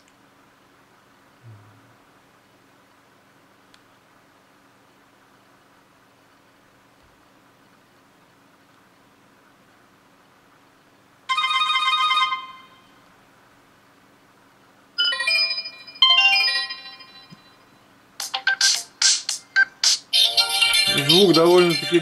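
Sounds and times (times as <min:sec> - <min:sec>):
smartphone ringtone previews: 0:20.4 - 0:22.0.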